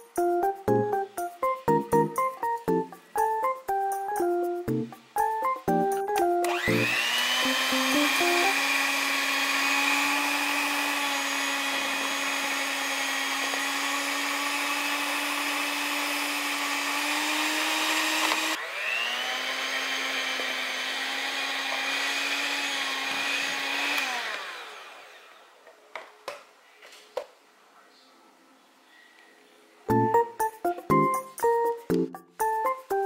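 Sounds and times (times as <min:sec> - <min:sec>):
electric hand mixer whine: 0:06.4 - 0:25.6.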